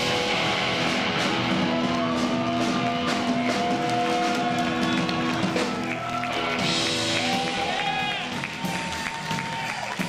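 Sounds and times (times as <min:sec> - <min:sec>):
bass guitar: 0:00.0 - 0:10.0
drum kit: 0:00.0 - 0:10.0
electric guitars: 0:00.0 - 0:10.0.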